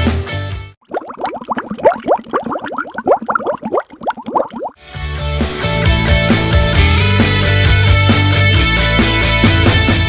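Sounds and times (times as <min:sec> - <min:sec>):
rising bubble bloops: 0:00.8 - 0:04.8.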